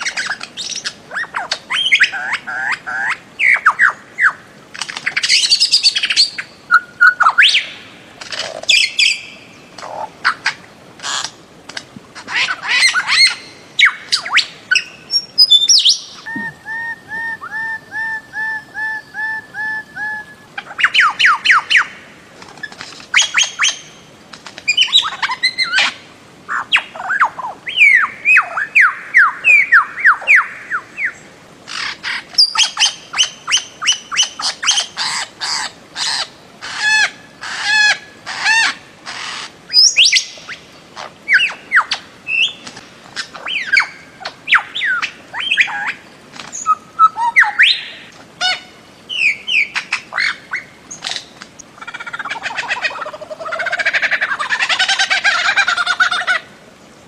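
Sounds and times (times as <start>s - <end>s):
bird squawking calls: 12.2s - 22.0s, 24.7s - 40.4s, 46.6s - 56.5s
bird whistled calls: 12.8s - 21.9s, 39.7s - 40.4s, 46.6s - 48.0s.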